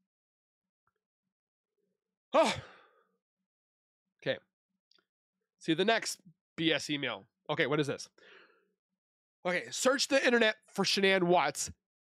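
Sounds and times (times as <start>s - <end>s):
man sighing: 2.4s - 3.0s.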